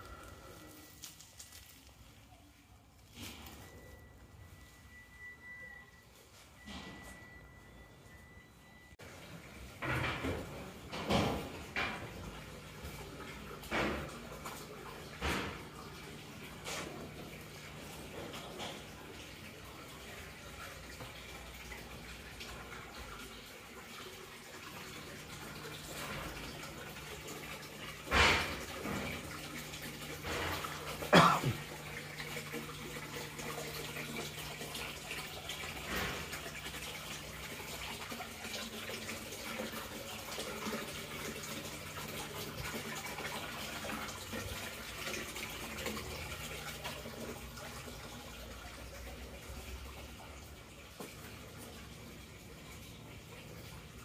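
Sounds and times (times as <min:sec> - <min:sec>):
water trickling: 0:09.0 - 0:54.0.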